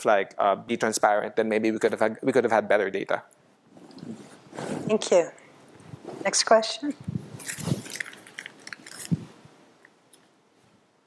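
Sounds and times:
small clicks and rustles: 7.4s - 10.4s.

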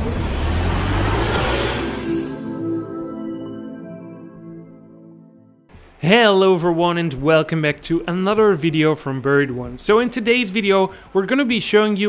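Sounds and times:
whoosh: 0.0s - 2.6s.

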